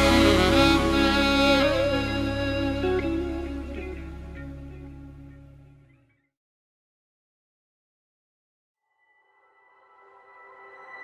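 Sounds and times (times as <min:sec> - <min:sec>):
song intro with held tones: 0:00.0 - 0:05.8.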